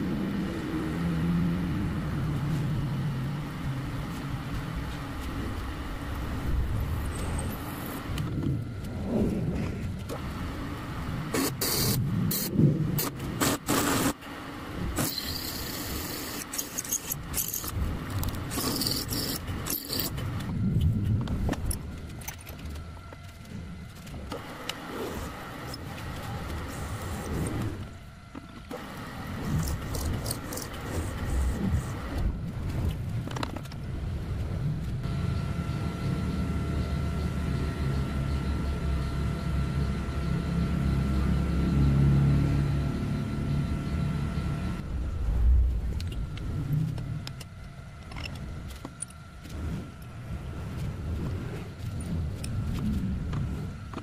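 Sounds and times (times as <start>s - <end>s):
milling machine spindle running: 10.0s - 20.6s, 21.6s - 32.2s
drill bit cutting metal: 18.5s - 20.2s.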